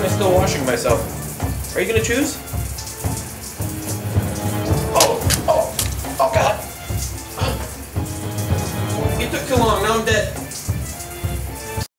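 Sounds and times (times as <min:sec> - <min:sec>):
low background music: 0:00.0 - 0:11.9
shower spray running: 0:00.4 - 0:11.8.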